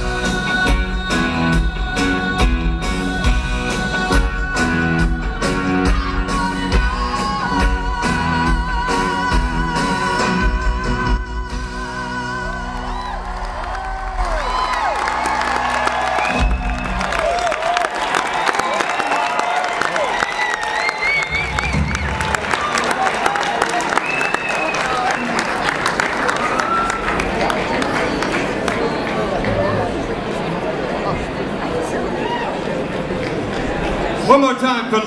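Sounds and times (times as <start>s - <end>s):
audience clapping and cheering: 12.5s - 30.5s, 32.0s - 34.2s
whistles: 16.2s - 17.2s, 20.2s - 22.4s, 23.9s - 25.6s.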